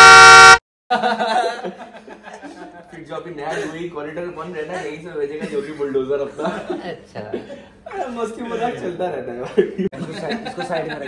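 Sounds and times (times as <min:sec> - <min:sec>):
men laughing: 0:00.9 - 0:02.8, 0:09.6 - 0:11.0
men talking: 0:02.9 - 0:11.0.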